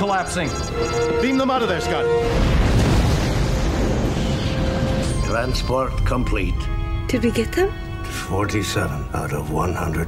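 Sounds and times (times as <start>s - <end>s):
starship explosion blast: 2.2s - 5.2s.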